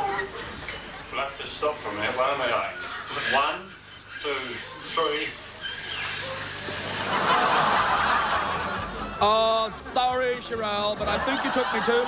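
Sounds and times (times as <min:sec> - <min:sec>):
people laughing together: 0:05.6 - 0:10.0, 0:10.8 - 0:12.0.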